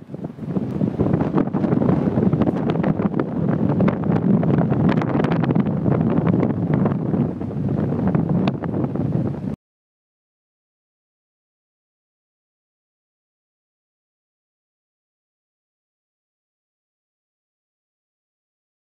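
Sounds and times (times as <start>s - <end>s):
wind buffeting microphone: 0.0s - 9.6s.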